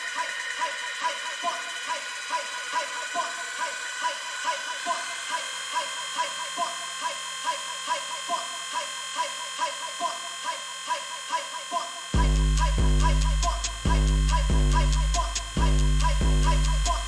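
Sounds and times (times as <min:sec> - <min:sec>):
buzzy synth pattern: 0:00.0 - 0:17.0.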